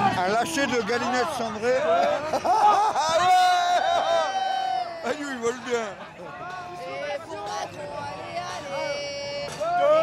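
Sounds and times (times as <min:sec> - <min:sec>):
people shouting: 0:02.9 - 0:05.2.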